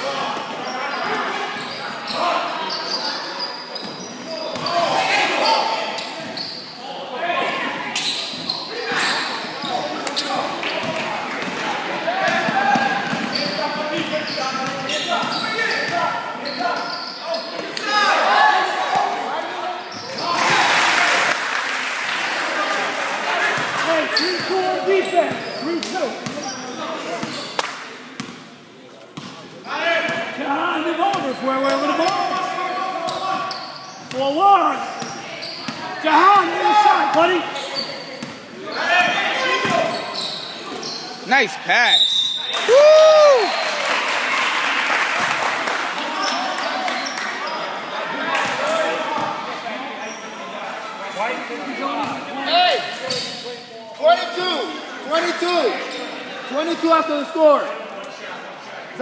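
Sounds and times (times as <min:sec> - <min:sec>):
shoe squeaks: 0:00.6 - 0:06.8, 0:07.9 - 0:10.9, 0:13.1 - 0:17.7, 0:19.8 - 0:20.4, 0:24.1 - 0:27.6, 0:31.1 - 0:36.0, 0:36.9 - 0:41.3, 0:41.9 - 0:42.5, 0:53.0 - 0:53.6
people calling out and talking: 0:22.3 - 0:43.8.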